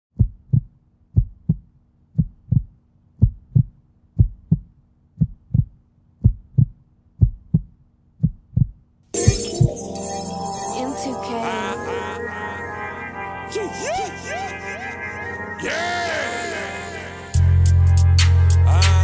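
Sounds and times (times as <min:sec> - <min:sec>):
heartbeat thumps: 0:00.1 - 0:09.8
loud music: 0:09.2 - 0:19.0.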